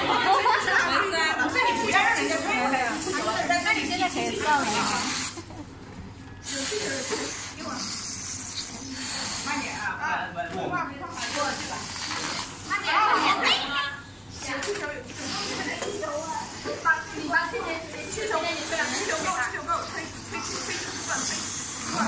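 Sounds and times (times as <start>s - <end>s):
people chatting: 0.0s - 5.4s, 8.9s - 22.0s.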